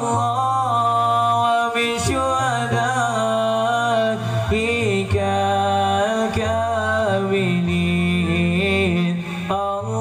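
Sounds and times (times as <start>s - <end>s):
men singing devotional song: 0.0s - 10.0s.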